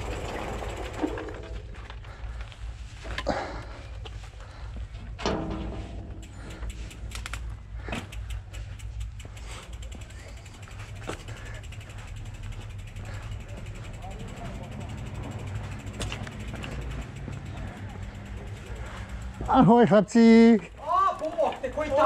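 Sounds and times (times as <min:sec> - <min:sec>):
bike freewheel hub ticking: 0:00.0 - 0:03.2, 0:03.8 - 0:22.0
tyres rolling on gravel: 0:00.0 - 0:05.2, 0:06.2 - 0:22.0.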